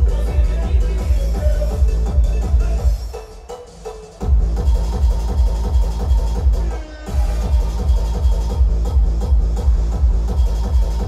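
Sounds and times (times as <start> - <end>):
heavy kick drum pounding: 0.0 - 3.0, 4.2 - 11.0
electronic dance music: 0.0 - 11.0.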